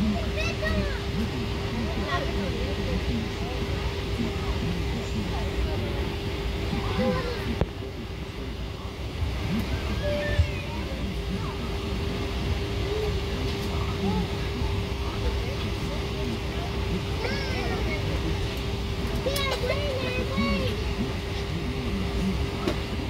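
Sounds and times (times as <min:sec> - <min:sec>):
faint indistinct voices: 0:00.0 - 0:23.0
aircraft cabin hum: 0:00.2 - 0:23.0.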